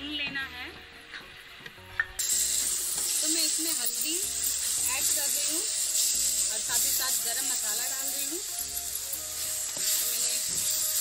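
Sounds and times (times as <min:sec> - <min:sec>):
food sizzling in oil: 0:01.2 - 0:11.0
metal spatula stirring: 0:02.2 - 0:11.0.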